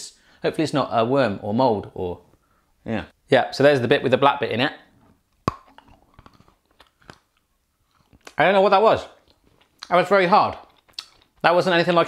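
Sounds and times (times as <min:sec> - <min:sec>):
chewing crunch clicks: 0:05.3 - 0:08.4, 0:09.2 - 0:11.5
chocolate bar cracking: 0:05.4 - 0:08.4.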